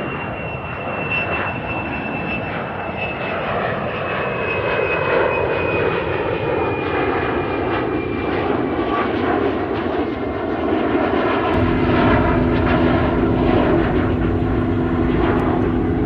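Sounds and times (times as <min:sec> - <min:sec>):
jet airliner passing overhead: 0:00.0 - 0:16.0
high fan whine: 0:11.5 - 0:16.0.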